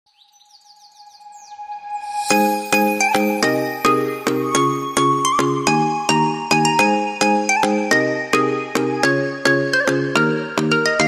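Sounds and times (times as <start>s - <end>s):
falling bird-like chirps: 0.1s - 4.6s
music: 1.3s - 11.0s
steady held tone: 1.7s - 5.2s.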